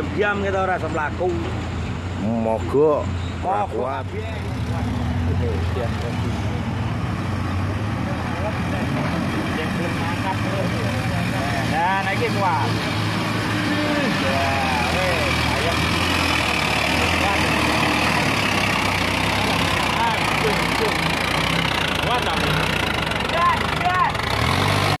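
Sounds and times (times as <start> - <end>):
truck diesel engine labouring: 0.0 - 25.0
voices calling out: 0.0 - 25.0.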